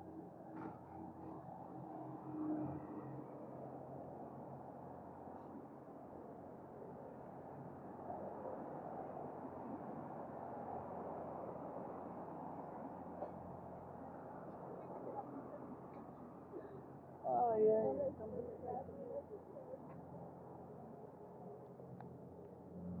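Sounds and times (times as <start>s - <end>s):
low hum of traffic: 0.0s - 23.0s
chatter of passers-by: 14.6s - 20.6s.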